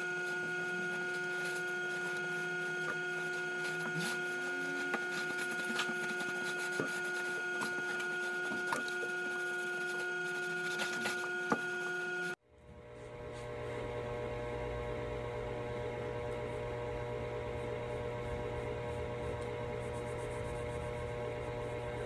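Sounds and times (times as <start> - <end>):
electrical hum: 0.0 - 22.0.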